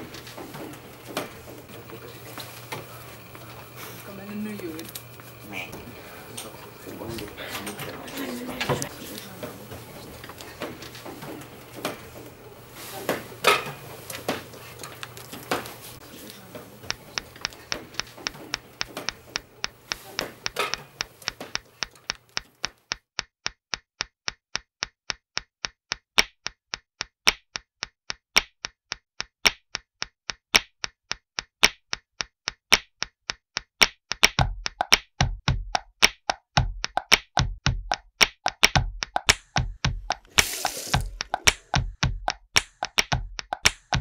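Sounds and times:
pencil tapping on wooden desk: 0:16.8 - 0:23.0, 0:34.2 - 0:44.0
deep thumps: 0:34.4 - 0:35.8, 0:36.6 - 0:38.0, 0:38.7 - 0:40.3, 0:41.0 - 0:44.0.

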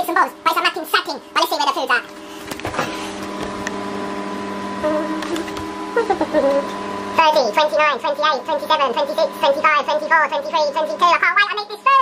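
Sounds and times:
microwave oven humming: 0:00.0 - 0:12.0.

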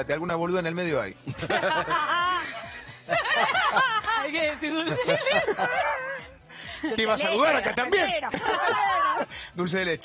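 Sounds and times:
person laughing: 0:04.9 - 0:06.3.

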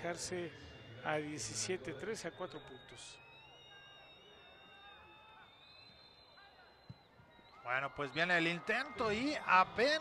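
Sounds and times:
faint stadium ambience: 0:00.0 - 0:10.0.

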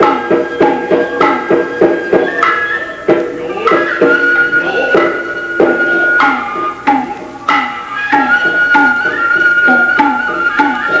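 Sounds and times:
held high tone: 0:00.0 - 0:11.0.

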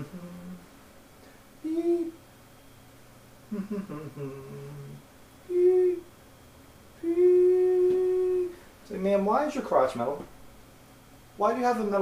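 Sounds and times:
man humming beep-like notes: 0:00.0 - 0:00.7, 0:01.6 - 0:02.2, 0:03.5 - 0:06.1, 0:07.0 - 0:08.6.

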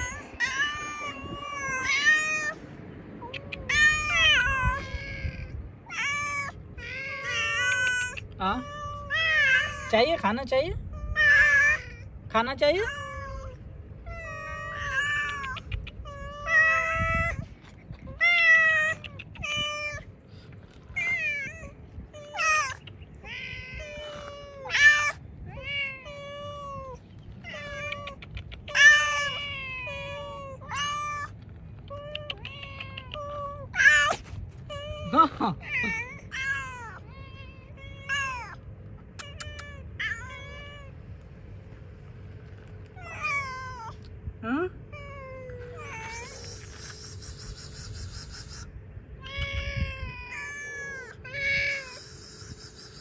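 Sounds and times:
cats meowing: 0:00.0 - 0:10.0, 0:10.9 - 0:12.2, 0:12.8 - 0:41.1, 0:42.8 - 0:44.2, 0:44.8 - 0:53.0.

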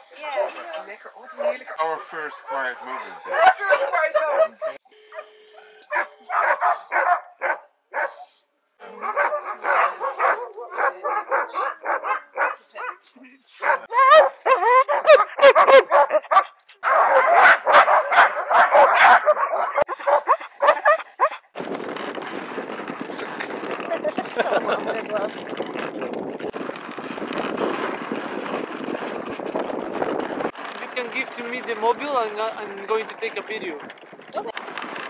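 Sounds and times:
sled dogs barking and yelping: 0:00.2 - 0:21.6.

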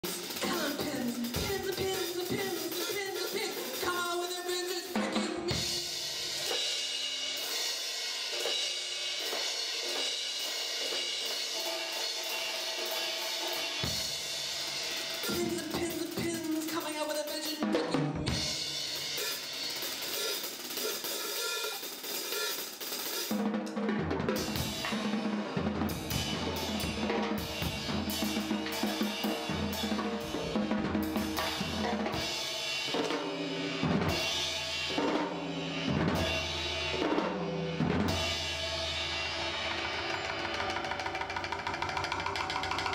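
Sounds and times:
cymbals: 0:00.0 - 0:23.5, 0:24.3 - 0:42.9
bass drum and toms: 0:23.3 - 0:33.1, 0:33.8 - 0:42.9.

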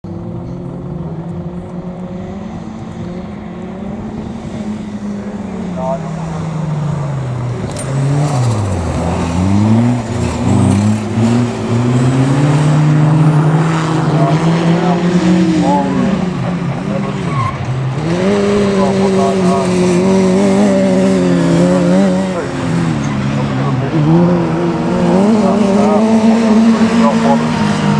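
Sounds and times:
racing car engines: 0:00.0 - 0:27.9.

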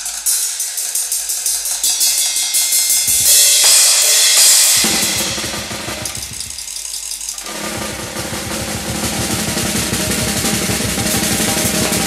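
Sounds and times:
thin high percussion: 0:00.0 - 0:12.0.

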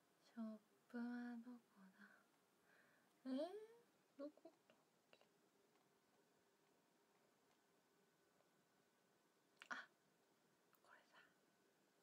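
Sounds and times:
young woman whispering: 0:09.6 - 0:10.0, 0:10.8 - 0:11.4.

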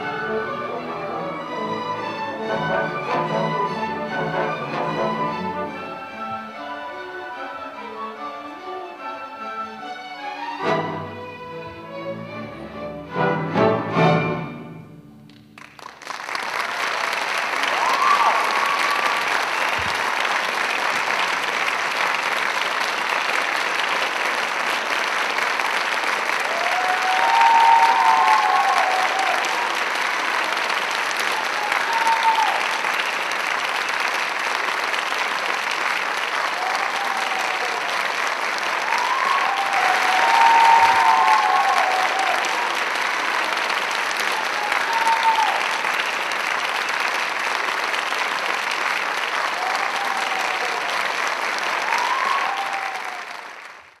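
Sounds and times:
audience applauding: 0:15.3 - 0:54.0
audience cheering: 0:16.0 - 0:22.3, 0:25.4 - 0:34.3, 0:35.5 - 0:54.0.

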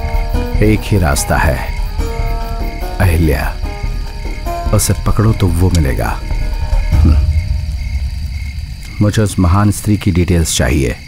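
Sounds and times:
low steady rumble: 0:06.8 - 0:09.9.

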